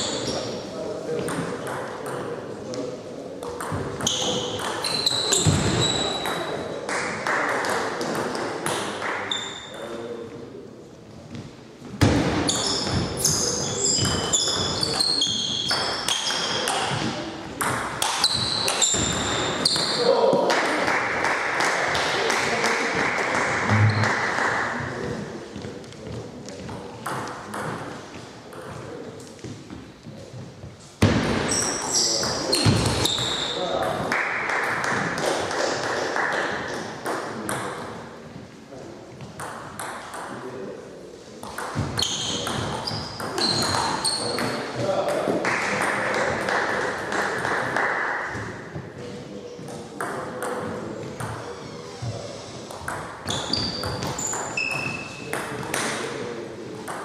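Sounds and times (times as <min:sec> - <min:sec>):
table tennis ball pinging: 0:03.5 - 0:06.6, 0:13.9 - 0:20.0.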